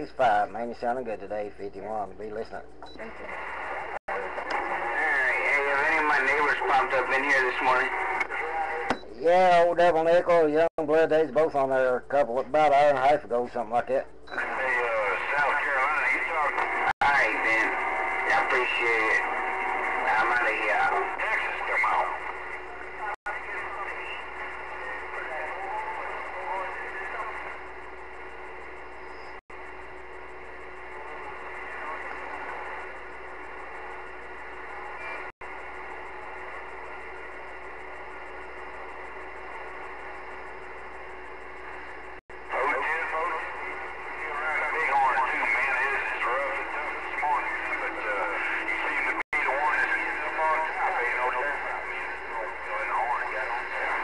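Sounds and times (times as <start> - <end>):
faint radio voices: 0.0 - 29.8, 30.4 - 54.0
radio static: 0.0 - 54.0.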